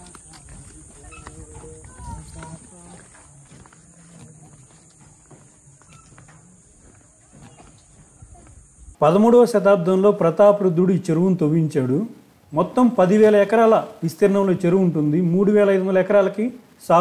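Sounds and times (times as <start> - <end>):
footsteps on metal deck: 0.0 - 9.0
murmuring voices: 0.0 - 9.0
steady high hiss: 4.8 - 17.0.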